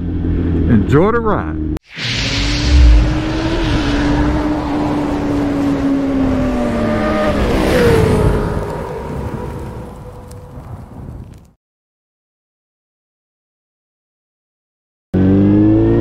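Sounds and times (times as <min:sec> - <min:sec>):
low boom: 0:01.9 - 0:05.4
motorcycle engine passing by: 0:02.7 - 0:09.8.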